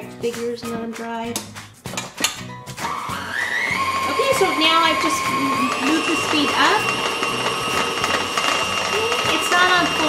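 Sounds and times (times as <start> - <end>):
stand mixer whining: 2.8 - 10.0.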